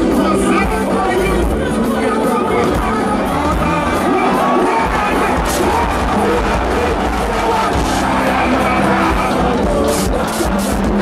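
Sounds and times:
crowd: 0.0 - 11.0
loud live music: 0.0 - 11.0.

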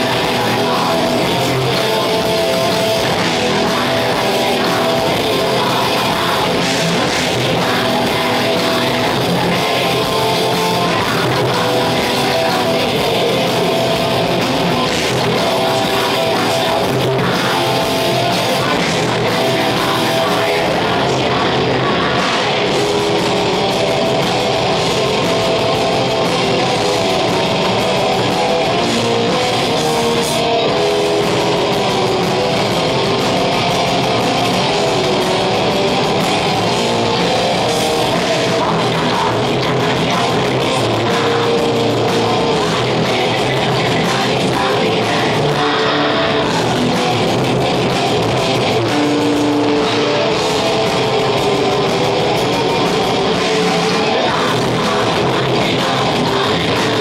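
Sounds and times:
bass: 0.0 - 57.0
distorted electric guitars: 0.0 - 57.0
fast drum beat: 0.0 - 57.0.

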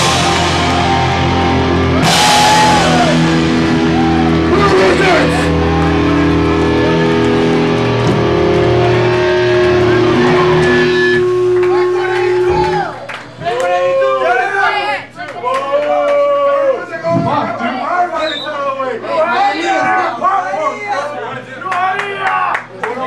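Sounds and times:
cymbal crash: 0.0 - 13.1
distorted electric guitar and bass: 0.0 - 13.4
people shouting: 0.0 - 14.9.

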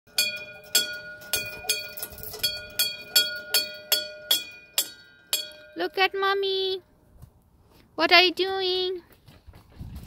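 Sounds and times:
metal hand bell ringing: 0.1 - 5.8.

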